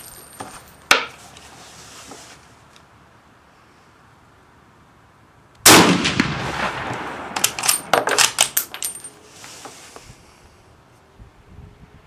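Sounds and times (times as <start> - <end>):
rifle shot echoing: 5.6 - 7.9
rifle bolt metallic clacks: 7.4 - 9.1.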